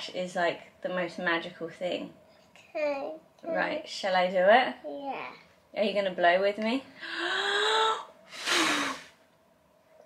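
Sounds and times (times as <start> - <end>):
puff of breath through lips: 8.3 - 9.2.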